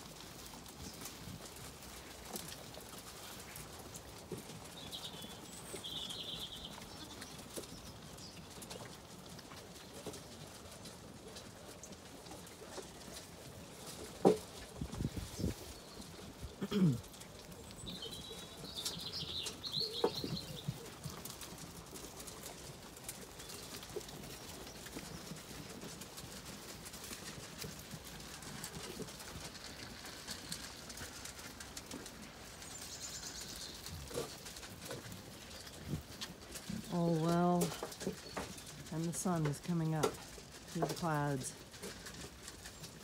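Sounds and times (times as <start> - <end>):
sheep shuffling: 0.0 - 43.0.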